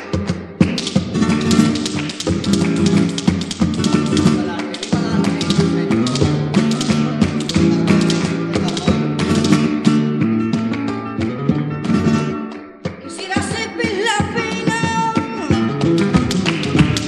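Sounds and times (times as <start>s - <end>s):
guitar-led flamenco music: 0.0s - 17.0s
sharp percussive taps: 0.0s - 17.0s.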